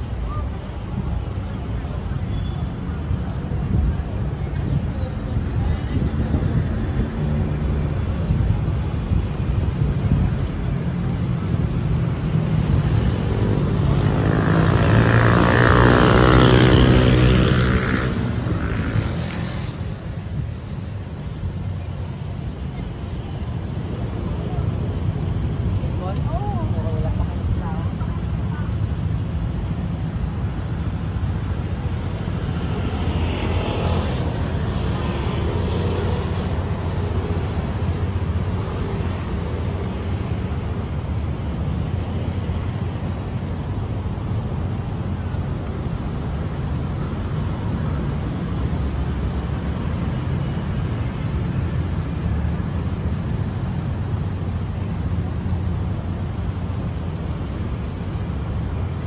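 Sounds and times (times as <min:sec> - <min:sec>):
low rumble of traffic: 0:00.0 - 0:59.0
vehicle passing: 0:12.1 - 0:20.2.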